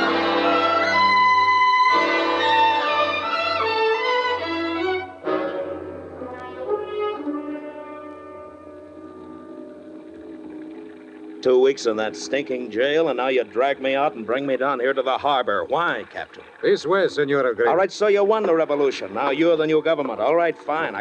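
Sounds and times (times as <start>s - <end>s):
orchestral brass music: 0.0s - 14.8s.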